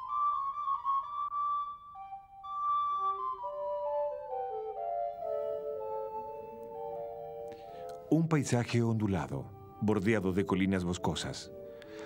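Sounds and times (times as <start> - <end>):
slow solo flute melody: 0.0 - 8.1.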